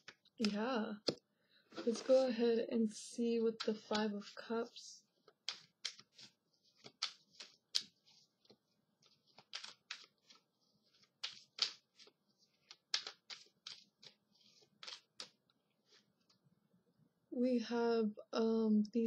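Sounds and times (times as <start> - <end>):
cards being shuffled: 0.0 - 2.4, 3.5 - 16.4.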